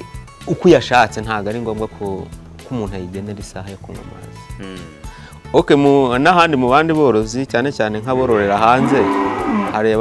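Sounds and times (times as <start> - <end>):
cow mooing: 8.3 - 10.0.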